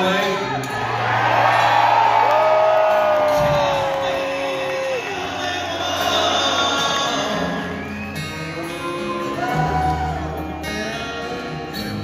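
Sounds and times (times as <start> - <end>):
live acoustic guitar music: 0.0 - 12.0
audience cheering: 0.6 - 6.3
long held whoop: 1.0 - 5.3.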